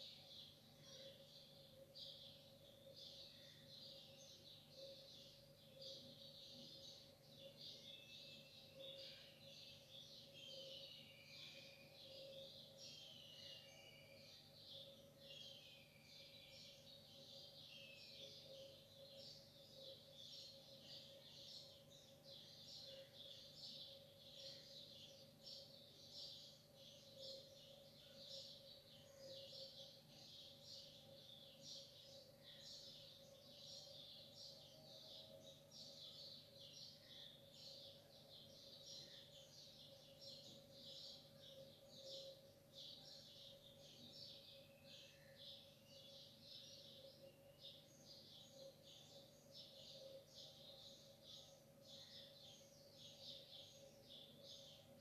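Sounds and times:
birds chirping: 0.0 - 55.0.

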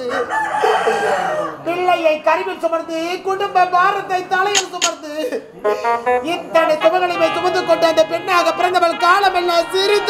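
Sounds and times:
person speaking: 4.5 - 5.4.

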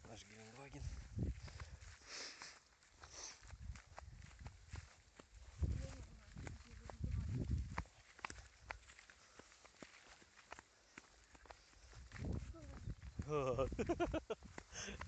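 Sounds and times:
footsteps in grass: 0.0 - 15.0.

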